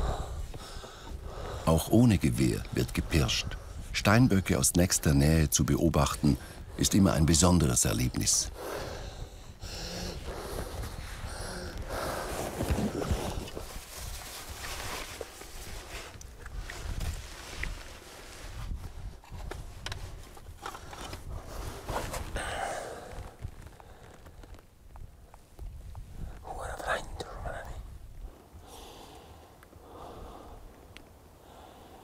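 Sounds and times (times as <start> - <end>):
low whispering: 0.0 - 0.5, 26.4 - 28.0
wind rumble on microphone: 0.0 - 1.6, 8.1 - 28.7
clothing and gear rustling: 10.2 - 26.0.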